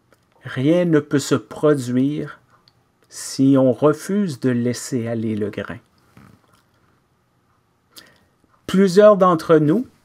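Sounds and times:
man speaking: 0.4s - 5.9s, 8.6s - 10.0s
faint breath: 7.9s - 8.4s.

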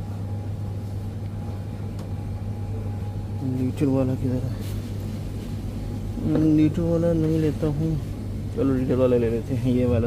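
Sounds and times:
chiller fans humming: 0.0s - 10.0s.

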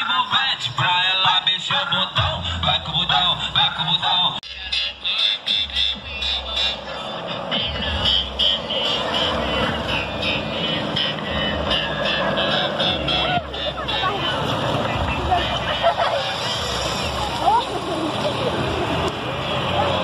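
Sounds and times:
music with steady beat: 0.0s - 17.6s
bus engine: 0.0s - 20.0s
voices: 0.0s - 20.0s.

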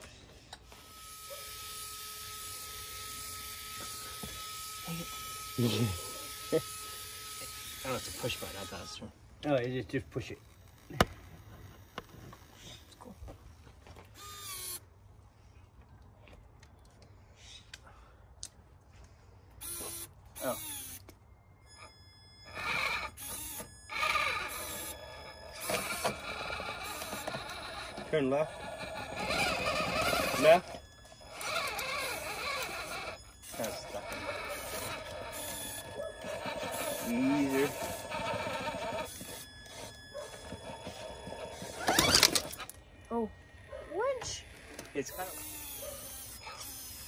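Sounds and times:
rc truck electric motor whining: 0.0s - 12.8s, 14.1s - 14.9s, 19.6s - 47.0s.

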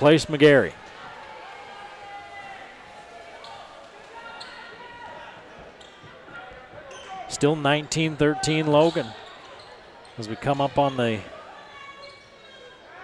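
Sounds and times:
faint crowd chatter: 0.0s - 13.0s.

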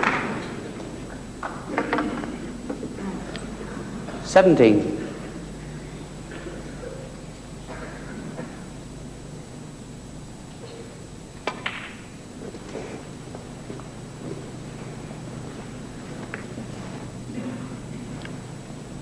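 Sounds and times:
snooker balls clicking: 0.0s - 3.5s, 11.4s - 14.4s
steady low hum: 0.0s - 19.0s.

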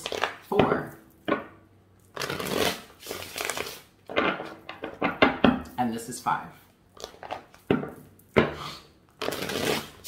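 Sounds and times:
cards riffling: 2.1s - 3.9s.

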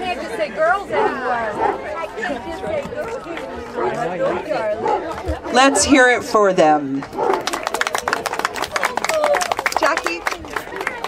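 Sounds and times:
people talking: 0.0s - 7.9s, 8.7s - 11.0s
crowd applauding: 7.0s - 11.0s.

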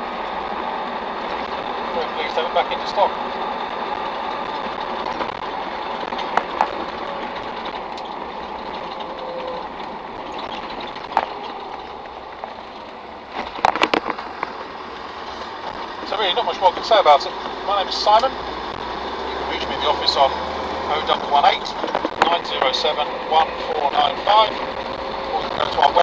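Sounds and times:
diesel engine running: 0.0s - 26.0s
road roar: 0.0s - 26.0s.

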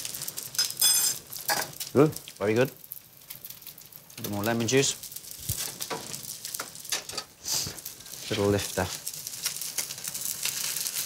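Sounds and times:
fish sizzling in a frying pan: 0.0s - 11.0s.

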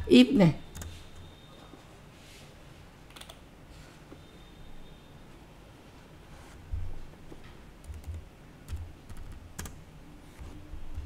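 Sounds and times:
keyboard keystrokes: 7.8s - 9.8s.

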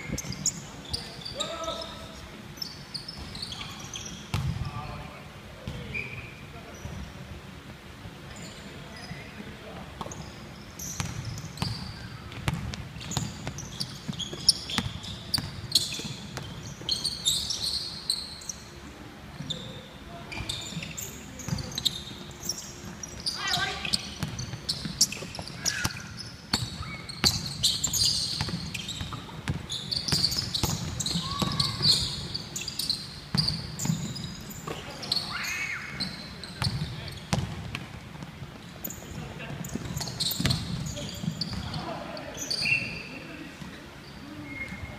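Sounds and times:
basketball bouncing on wooden floor: 4.3s - 4.6s, 11.0s - 16.5s, 26.5s - 32.0s, 36.6s - 38.2s, 39.7s - 41.7s.

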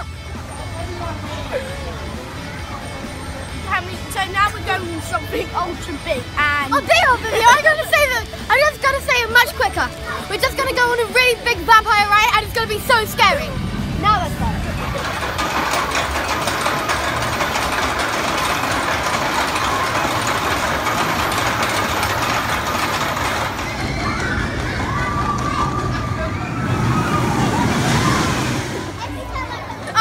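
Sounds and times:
people's voices: 0.0s - 30.0s
roller coaster rumbling on track: 0.0s - 30.0s.

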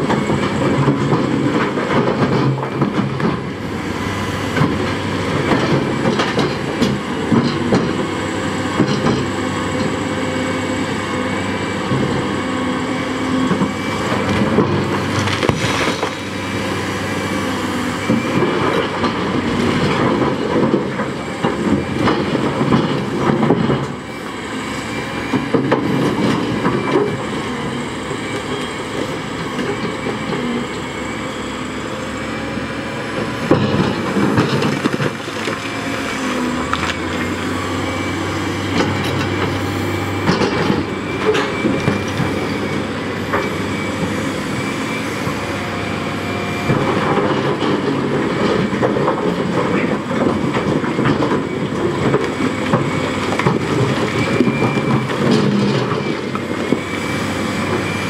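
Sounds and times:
excavator diesel engine running: 0.0s - 58.0s
rocks clattering and knocking: 13.6s - 16.3s
steel bucket scraping rocks: 15.1s - 16.4s.

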